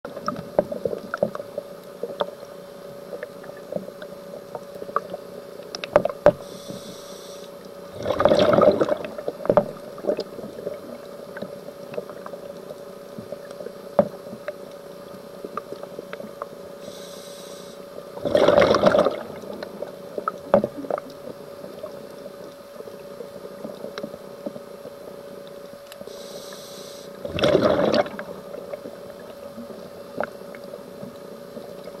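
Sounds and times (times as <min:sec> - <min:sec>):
crackling clicks underwater: 0:00.1 - 0:32.0
steady hum: 0:00.1 - 0:32.0
regulator inhalation hiss: 0:06.4 - 0:07.6, 0:16.8 - 0:17.9, 0:26.1 - 0:27.2
gurgling rush of exhaled bubbles: 0:07.9 - 0:11.0, 0:18.2 - 0:21.2, 0:27.2 - 0:29.2.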